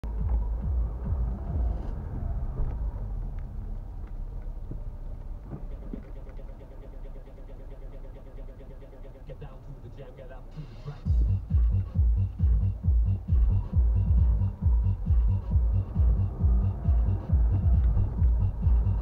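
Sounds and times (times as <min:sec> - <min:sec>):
car engine and road rumble: 0:00.0 - 0:19.0
faint rhythmic ticking: 0:05.3 - 0:19.0.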